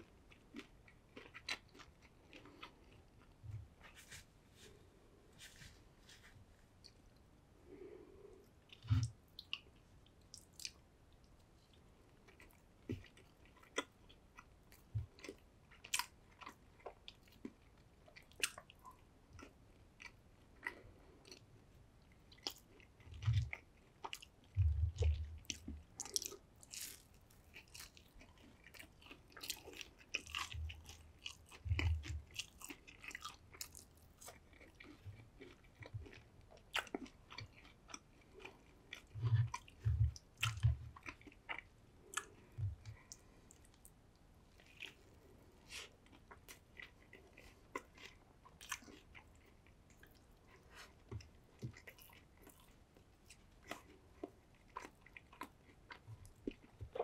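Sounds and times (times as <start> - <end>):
chewing crunchy food: 0.0 - 4.1, 7.7 - 57.0.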